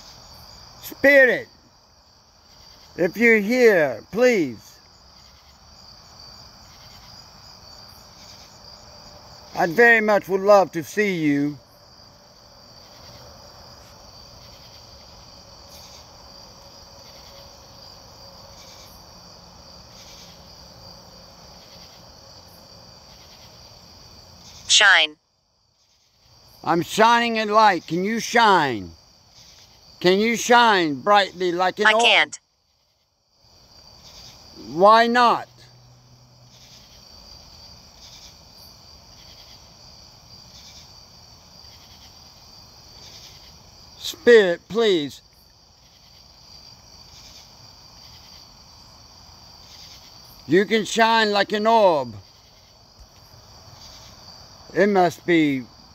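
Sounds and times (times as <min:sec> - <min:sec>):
crickets and insects trilling: 0:00.0 - 0:55.9.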